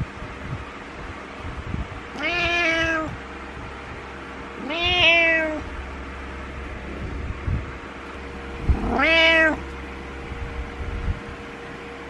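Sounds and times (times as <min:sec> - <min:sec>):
cat meowing: 0:02.1 - 0:03.2, 0:04.6 - 0:05.7, 0:08.7 - 0:09.6.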